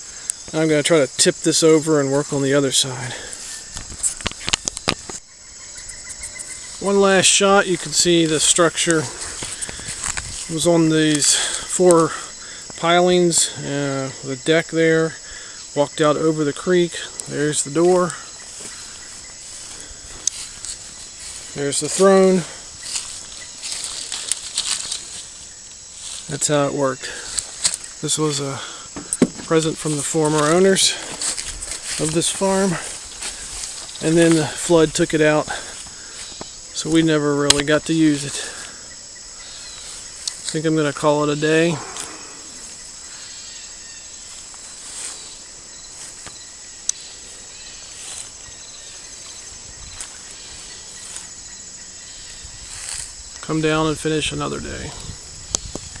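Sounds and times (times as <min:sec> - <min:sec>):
high-pitched insect chorus: 0:00.0 - 0:56.0
outdoor background: 0:00.0 - 0:56.0
sharp rustling crackles: 0:08.9 - 0:10.6, 0:17.8 - 0:26.4, 0:27.2 - 0:34.8.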